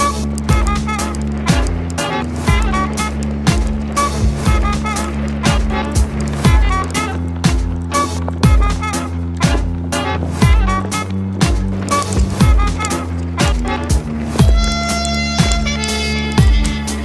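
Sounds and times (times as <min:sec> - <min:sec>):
music with steady beat: 0:00.0 - 0:17.0.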